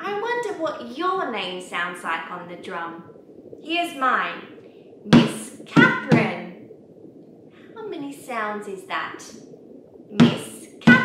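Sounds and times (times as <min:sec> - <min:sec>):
woman speaking: 0:00.0 - 0:03.0, 0:03.6 - 0:04.5, 0:05.1 - 0:06.6, 0:07.8 - 0:09.4, 0:10.1 - 0:11.0
hand drum thumps: 0:05.2 - 0:06.4.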